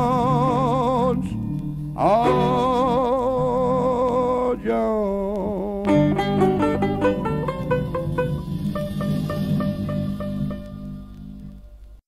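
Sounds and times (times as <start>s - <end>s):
plucked banjo and guitar: 0.0s - 4.2s, 5.8s - 11.0s
string bass: 0.0s - 11.8s.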